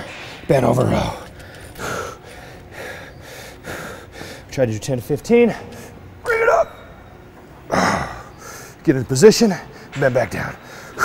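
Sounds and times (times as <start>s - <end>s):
man taking sharp breaths: 1.4s - 4.5s, 8.2s - 8.8s, 10.6s - 11.0s.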